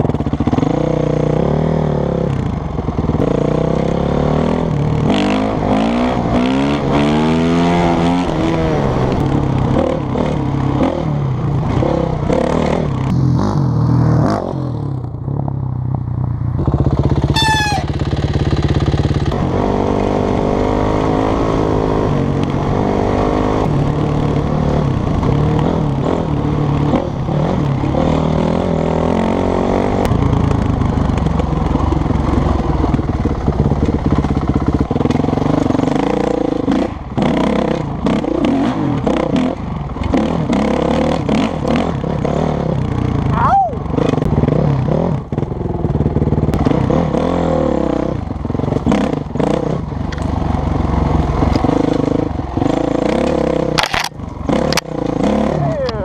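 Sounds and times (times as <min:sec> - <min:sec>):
dirt bike engine running: 0:00.0 - 0:56.0.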